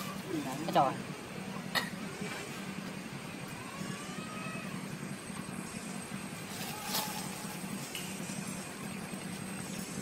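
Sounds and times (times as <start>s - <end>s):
low engine hum: 0.0s - 10.0s
faint thin whine: 3.3s - 10.0s.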